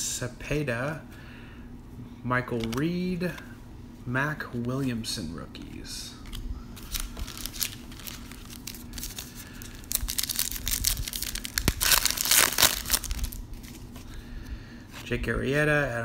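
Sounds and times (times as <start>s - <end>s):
foil wrapper tearing and crinkling: 6.3s - 14.0s.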